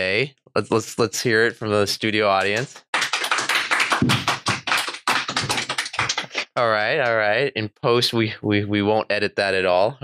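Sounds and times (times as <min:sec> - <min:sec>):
audience clapping: 0:02.4 - 0:07.2.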